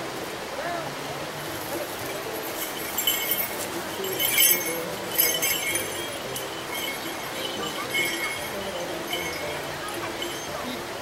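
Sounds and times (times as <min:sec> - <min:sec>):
light clinking jingle: 0:01.4 - 0:11.0.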